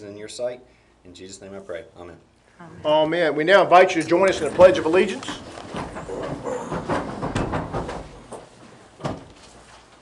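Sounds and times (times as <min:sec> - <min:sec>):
feet shuffling: 0:04.1 - 0:10.0
chairs knocking and scraping: 0:04.2 - 0:09.6.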